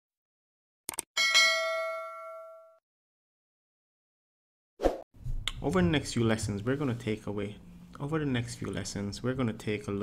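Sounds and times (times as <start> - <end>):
notification bell chime: 1.2 - 2.8.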